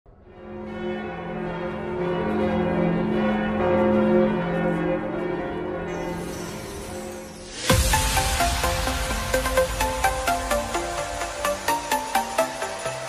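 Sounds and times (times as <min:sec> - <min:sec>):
bells ringing: 0:10.0 - 0:13.0.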